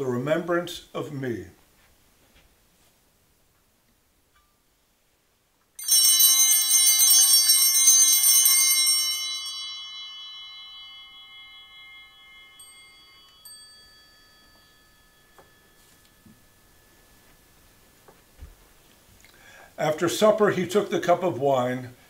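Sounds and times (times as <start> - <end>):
altar bells ringing: 5.8 - 19.1.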